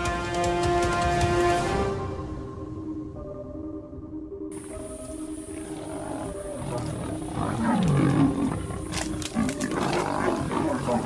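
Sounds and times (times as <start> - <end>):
big cats growling and snarling: 4.8 - 11.0.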